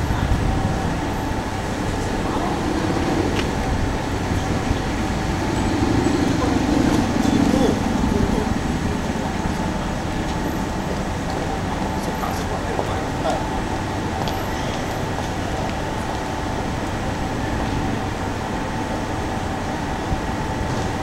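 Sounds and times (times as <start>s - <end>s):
indistinct voices: 0.0s - 21.0s
road traffic noise: 0.0s - 21.0s.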